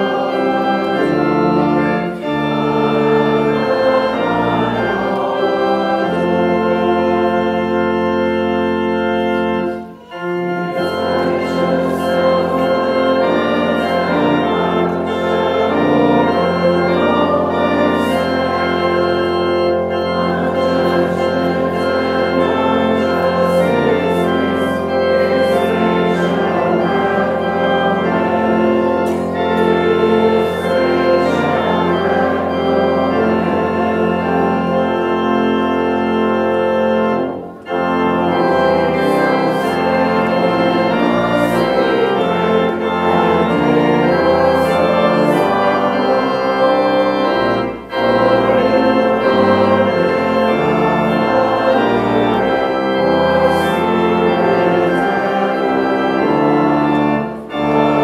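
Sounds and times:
pipe organ chords: 0:00.0 - 0:58.0.

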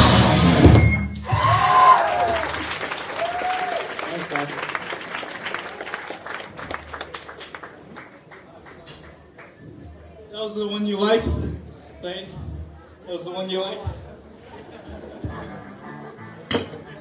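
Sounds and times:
hardcore punk band playing: 0:00.0 - 0:01.6
crowd whooping and clapping: 0:01.2 - 0:08.4.

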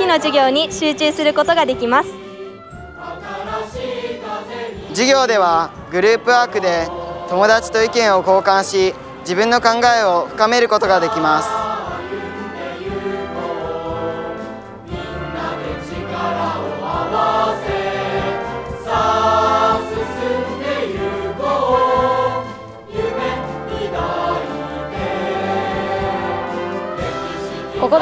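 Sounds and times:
choir singing sustained notes: 0:00.0 - 0:28.0.

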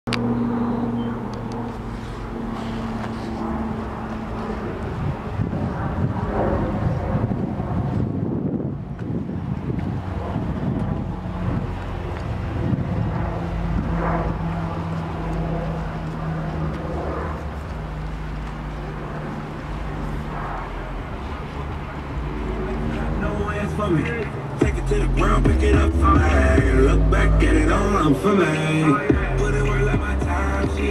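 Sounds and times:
vehicle engine humming: 0:00.1 - 0:30.9
wind buffeting microphone: 0:01.4 - 0:24.7.

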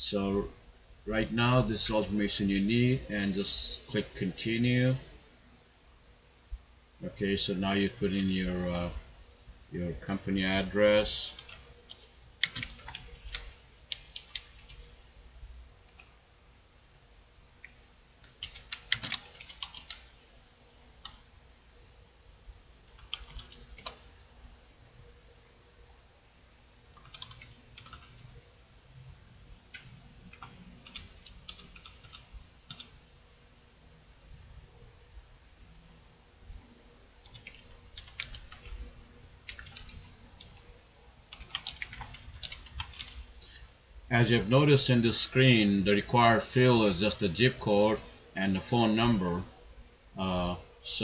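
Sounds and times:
typing on computer keyboard: 0:11.4 - 0:14.8, 0:18.2 - 0:20.1, 0:22.9 - 0:24.0, 0:27.0 - 0:28.3, 0:29.7 - 0:33.0, 0:37.2 - 0:38.8, 0:39.5 - 0:40.6, 0:41.3 - 0:43.2.

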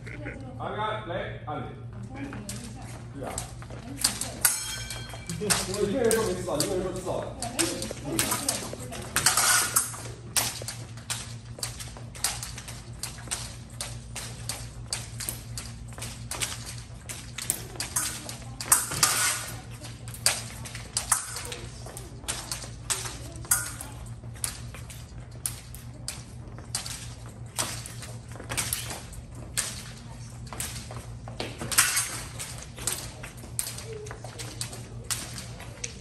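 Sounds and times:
steady low hum: 0:00.0 - 0:36.0
metallic clinks of blades: 0:04.0 - 0:15.6, 0:16.3 - 0:29.0.

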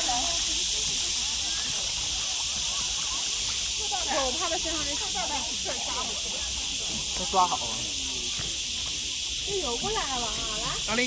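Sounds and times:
people's voices: 0:00.0 - 0:11.0
steady hiss: 0:00.0 - 0:11.0.

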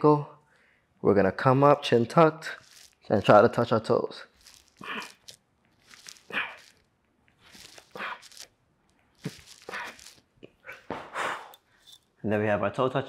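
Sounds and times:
sharp breathy exhales: 0:10.6 - 0:11.9.

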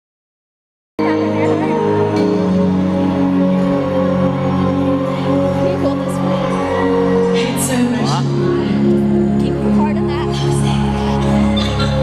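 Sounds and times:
amplified concert music chords: 0:01.0 - 0:12.0.

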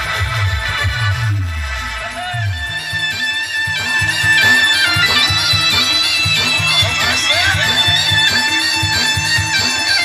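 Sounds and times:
dance music from live band: 0:00.0 - 0:10.0.

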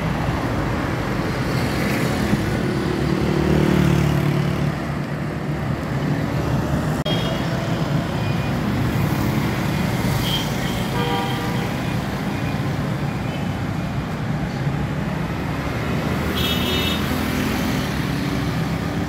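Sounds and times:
road traffic: 0:00.0 - 0:19.0.

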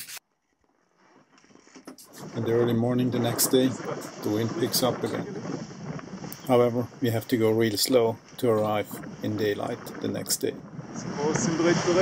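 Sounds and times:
faint noise: 0:01.9 - 0:12.0
voice-over narration: 0:02.2 - 0:05.5, 0:06.4 - 0:12.0.

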